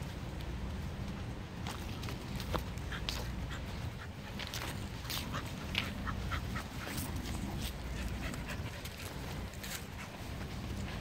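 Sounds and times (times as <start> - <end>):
dogs play-fighting on grass: 0.0 - 11.0
steady low rumble: 0.0 - 11.0.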